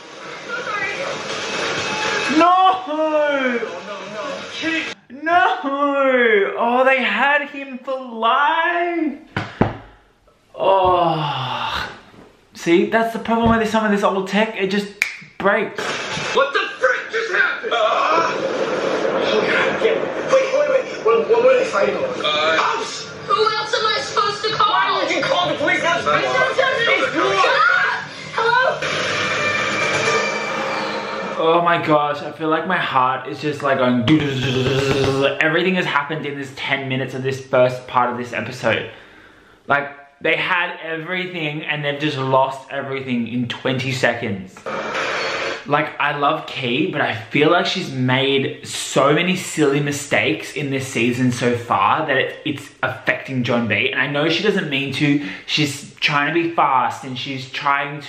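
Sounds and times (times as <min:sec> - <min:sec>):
man groaning: 0:10.6 - 0:12.0, 0:34.1 - 0:35.3.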